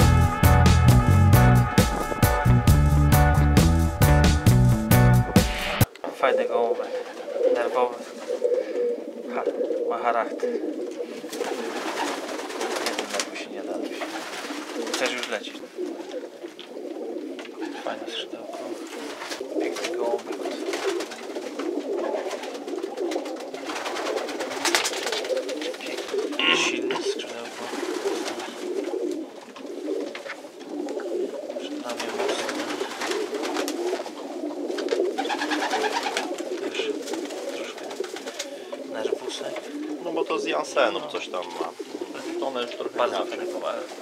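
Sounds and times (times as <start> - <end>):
pigeons cooing: 4.4 - 44.0.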